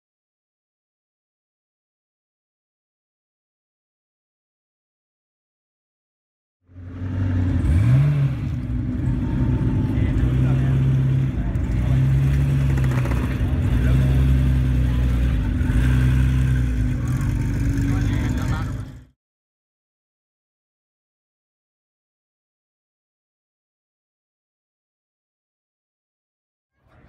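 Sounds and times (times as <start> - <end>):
car engine revving: 6.7 - 19.1.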